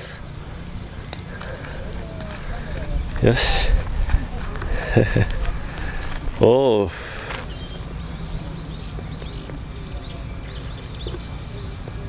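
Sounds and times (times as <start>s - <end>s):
footsteps on gravel: 0.8s - 9.6s
wind rumble on microphone: 1.9s - 6.5s.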